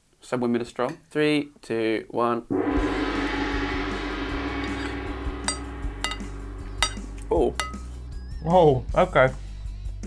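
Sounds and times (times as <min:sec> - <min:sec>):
gong ringing: 0:02.5 - 0:08.3.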